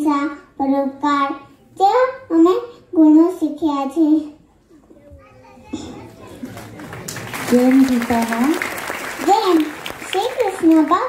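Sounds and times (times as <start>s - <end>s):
murmur of children's voices: 0.0s - 7.0s, 9.2s - 11.0s
audience clapping: 6.3s - 11.0s.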